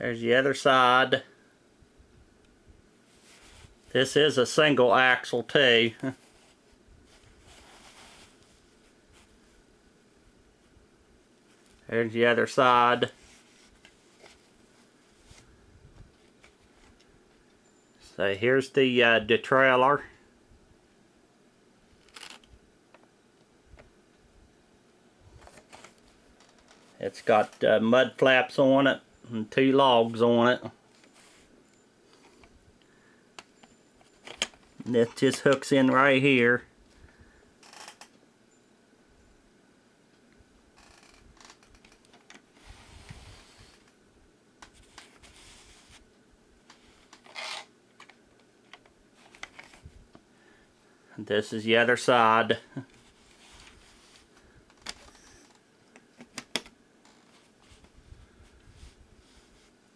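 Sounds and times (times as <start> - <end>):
rustling on fabric: 3.0 - 4.0, 6.0 - 9.7, 13.0 - 17.0, 44.7 - 46.1, 53.0 - 55.5, 57.0 - 59.9
toy truck handling rustle: 22.0 - 22.5, 44.7 - 46.0, 46.7 - 49.9, 52.9 - 57.9.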